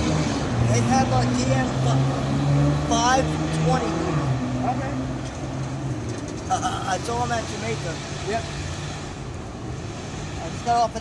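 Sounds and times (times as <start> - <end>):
cars rumbling over railroad crossing: 0.0 - 11.0.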